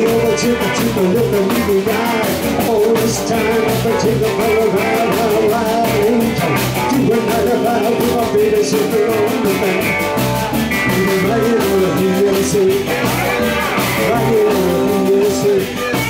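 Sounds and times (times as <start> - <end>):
bass guitar: 0.0 - 16.0
drum kit beat: 0.0 - 16.0
electric guitars: 0.0 - 16.0.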